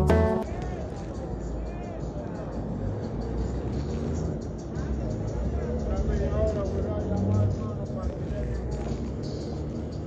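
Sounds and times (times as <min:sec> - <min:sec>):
intro music: 0:00.0 - 0:00.6
traffic noise: 0:00.0 - 0:10.0
faint voices: 0:00.4 - 0:09.8.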